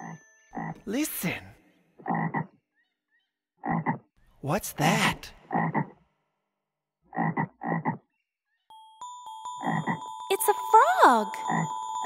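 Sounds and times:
cartoon frog croaking: 3.6s - 4.0s, 7.1s - 8.1s
held musical note: 8.7s - 12.0s.

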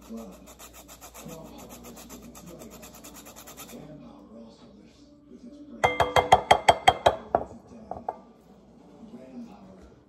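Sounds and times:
grater scraping peel: 0.0s - 3.8s.

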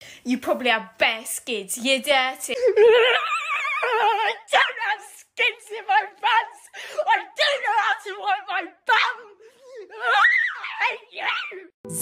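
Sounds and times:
girl laughing and squealing: 2.6s - 4.5s.

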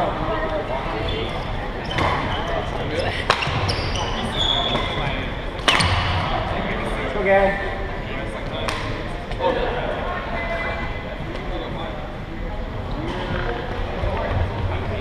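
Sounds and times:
spectators chattering: 0.0s - 15.0s.

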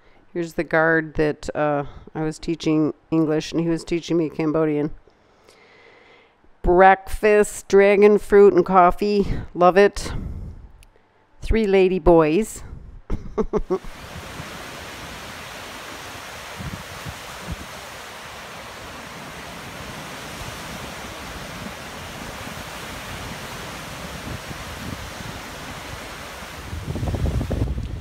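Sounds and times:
wind on microphone: 10.1s - 10.8s, 12.6s - 13.1s, 13.8s - 28.0s
waves washing on beach: 13.7s - 28.0s.

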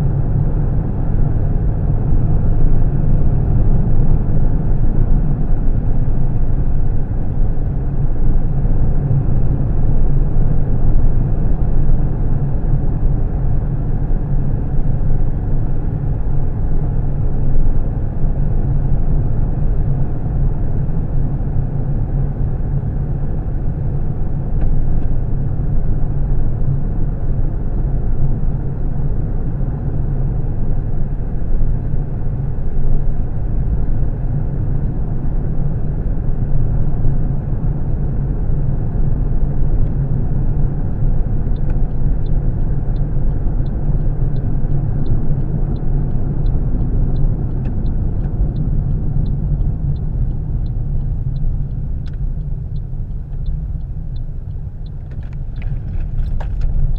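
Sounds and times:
tyre and engine rumble: 36.8s - 56.9s
light ticking: 41.1s - 56.9s.

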